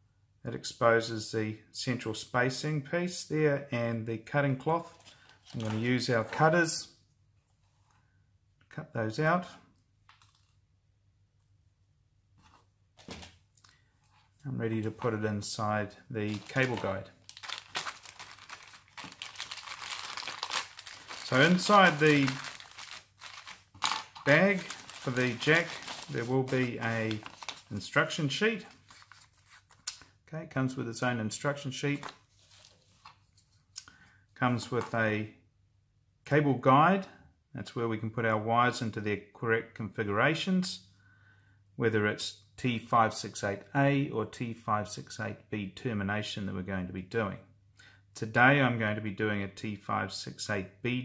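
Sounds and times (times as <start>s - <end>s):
paper sheet rustling: 4.8s - 6.4s, 16.2s - 30.0s, 31.9s - 33.6s.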